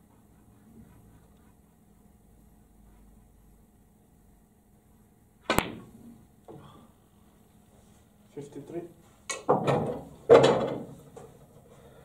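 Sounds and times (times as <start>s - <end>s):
snooker ball dropping into pocket: 5.4s - 6.0s.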